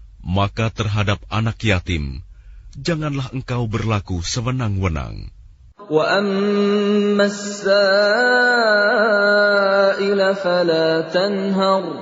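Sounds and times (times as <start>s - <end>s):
person chanting melodically: 5.8s - 12.0s.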